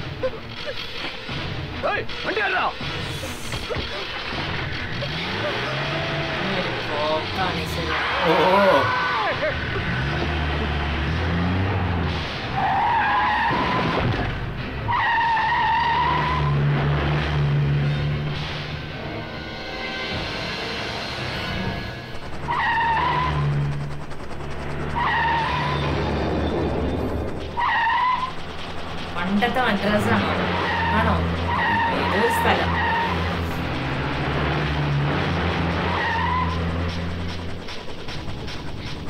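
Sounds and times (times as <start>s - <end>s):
tyres screeching: 0.0s - 16.7s, 24.8s - 39.0s
background music: 0.0s - 39.0s
car engine running: 0.0s - 39.0s.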